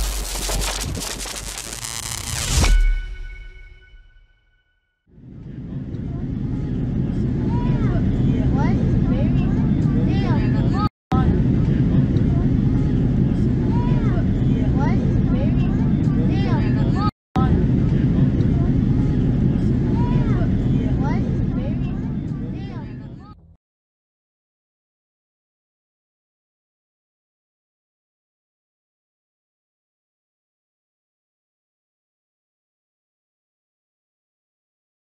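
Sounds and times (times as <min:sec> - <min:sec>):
airplane cabin drone: 0:05.2 - 0:23.1.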